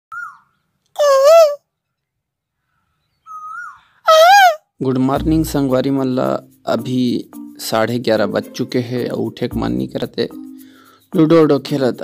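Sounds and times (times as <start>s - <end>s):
bird calling: 0.1s - 1.6s, 2.9s - 4.6s
man imitating bird call: 1.0s - 1.6s, 3.3s - 4.6s.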